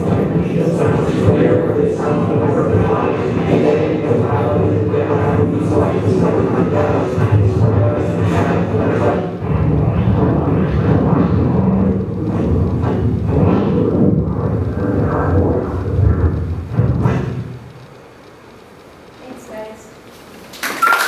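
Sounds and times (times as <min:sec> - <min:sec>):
loud bass-heavy music: 0:05.2 - 0:17.4.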